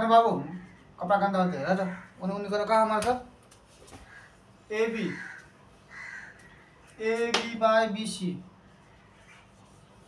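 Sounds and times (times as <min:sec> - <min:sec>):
bird calling: 0:04.0 - 0:07.3.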